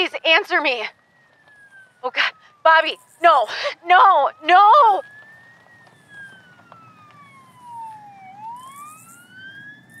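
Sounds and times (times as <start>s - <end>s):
faint emergency siren wailing: 0.0s - 10.0s.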